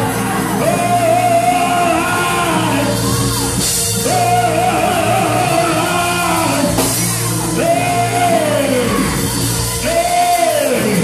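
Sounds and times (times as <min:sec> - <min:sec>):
amplified church music: 0:00.0 - 0:11.0
man singing into a microphone: 0:00.5 - 0:03.2, 0:04.0 - 0:11.0.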